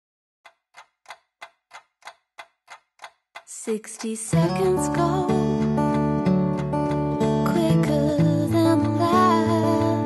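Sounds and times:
clock ticking: 0.4s - 9.9s.

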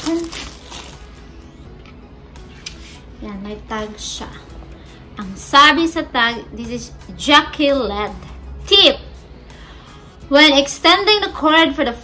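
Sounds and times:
plastic bag crinkling: 0.0s - 1.2s
faint background music: 0.0s - 12.0s.

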